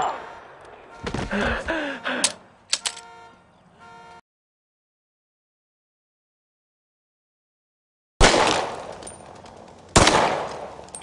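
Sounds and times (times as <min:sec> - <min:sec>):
man groaning in pain: 0:01.3 - 0:02.4.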